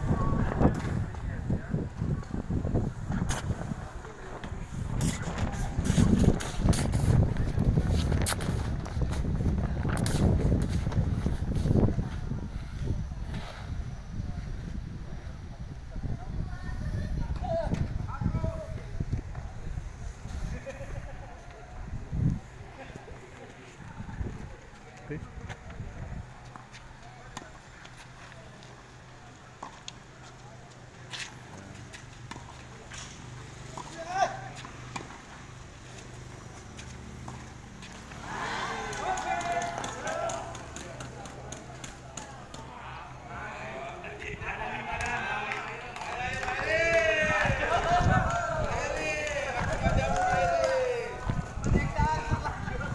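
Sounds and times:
people talking: 0.0 - 8.5, 11.8 - 35.1, 37.3 - 52.9
tennis balls struck by rackets: 36.7 - 42.8.

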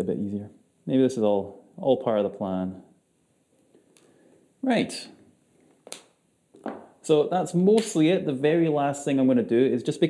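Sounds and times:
soft breath: 3.6 - 4.6
person talking: 4.6 - 5.2, 7.0 - 10.0.

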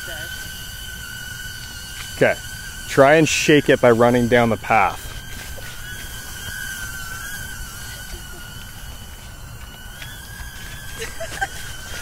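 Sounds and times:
drone propellers whining: 0.0 - 12.0.

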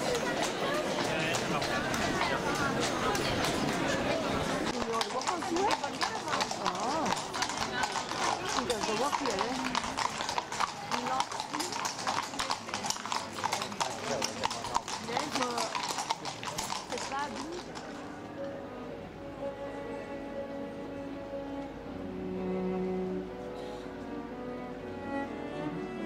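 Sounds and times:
hooves clip-clopping on stone: 0.0 - 18.6.

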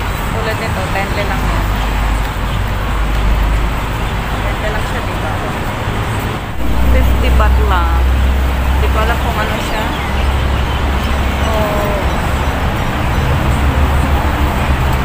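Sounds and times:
background voices of passers-by: 0.0 - 15.0
low traffic rumble: 0.0 - 15.0.

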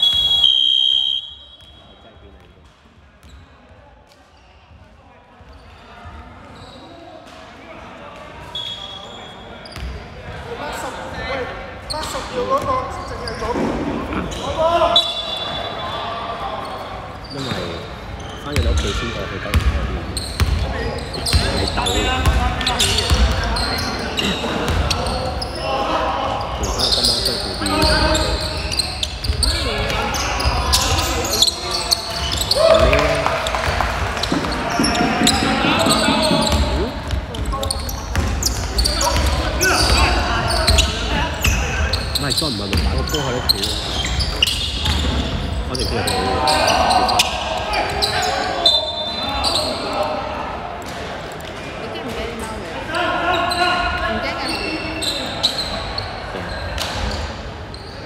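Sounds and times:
referee's whistle: 0.0 - 2.1, 8.5 - 9.9, 14.3 - 16.2
players' voices and calls: 0.0 - 58.0
basketball bouncing on wooden court: 19.5 - 23.4, 33.6 - 41.6, 44.0 - 45.4.

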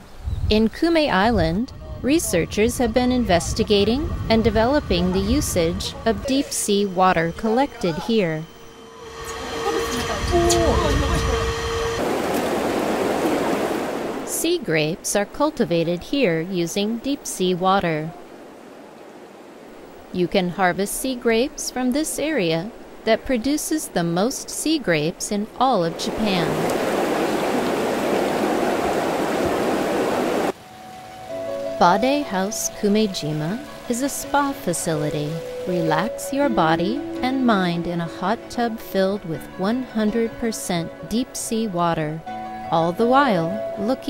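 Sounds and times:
soft background music: 0.8 - 12.0, 30.5 - 44.0
steady hum: 0.8 - 17.3
water running and churning: 0.9 - 20.2, 21.9 - 31.1
running splashing water: 12.0 - 14.4, 25.9 - 31.0.

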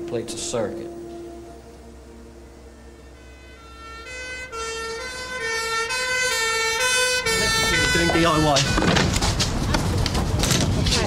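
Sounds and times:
two-tone ambulance siren: 0.0 - 9.3.

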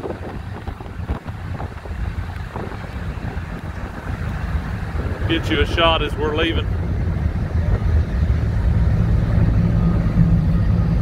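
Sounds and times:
low rumble of ferry: 0.0 - 11.0
wind buffeting microphone: 0.0 - 11.0.

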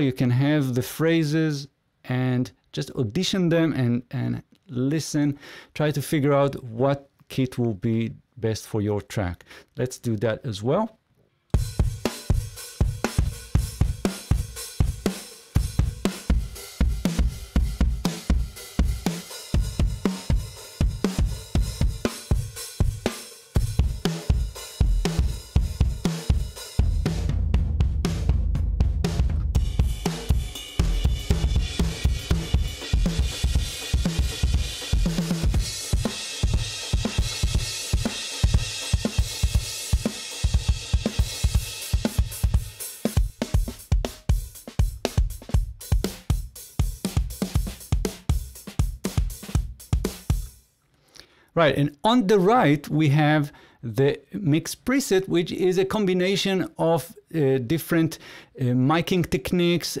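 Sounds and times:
rock drum grooves: 11.5 - 50.7.

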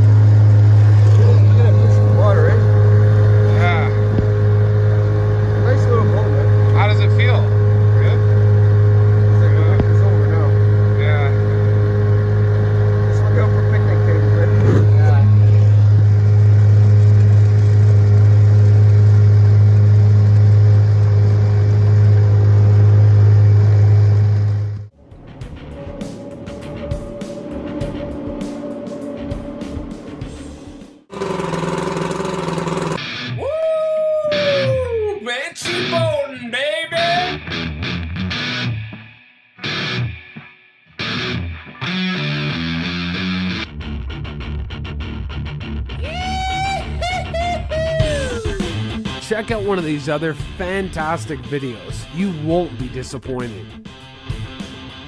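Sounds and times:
outboard motor running: 0.0 - 24.9, 31.1 - 33.0
music: 0.0 - 33.6, 34.3 - 55.0.

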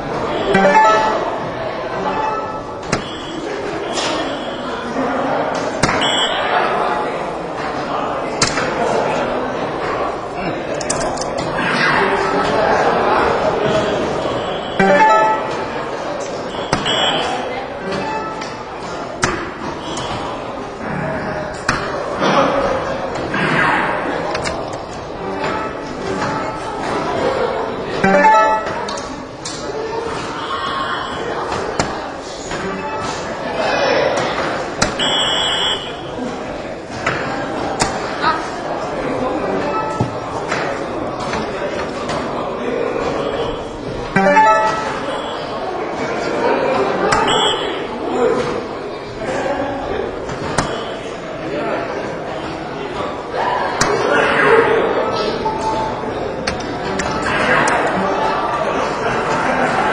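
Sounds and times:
crowd chatter: 0.0 - 59.9
electronic beep: 0.6 - 1.2, 35.0 - 36.0
dart striking electronic dartboard: 34.8 - 35.5.

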